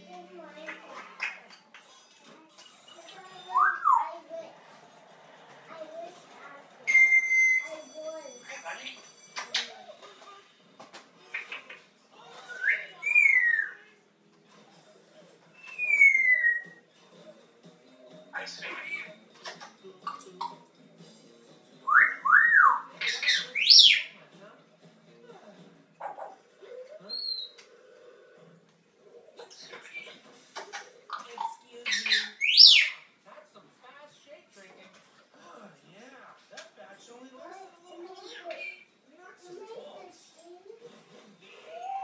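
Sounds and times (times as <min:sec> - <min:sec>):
parrot squawk: 0:06.9 - 0:07.7, 0:11.2 - 0:14.0, 0:15.6 - 0:16.8, 0:18.3 - 0:19.7, 0:21.8 - 0:24.2, 0:26.0 - 0:27.6, 0:29.4 - 0:33.1
parrot whistle sweeping in pitch: 0:06.9 - 0:07.7
parrot whistling downward: 0:06.9 - 0:07.7, 0:15.6 - 0:16.8.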